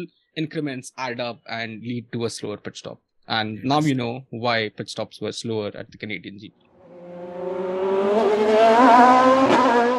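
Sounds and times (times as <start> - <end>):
racing car engine accelerating: 6.8 - 9.9.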